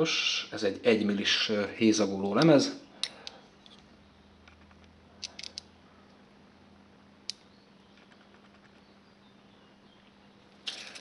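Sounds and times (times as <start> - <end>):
faint steady hum: 0.0 - 11.0
small metal clicks: 2.4 - 5.7.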